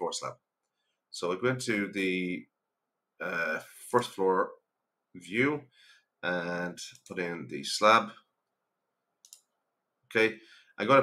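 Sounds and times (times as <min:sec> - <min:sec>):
computer mouse clicks: 0:09.2 - 0:09.5.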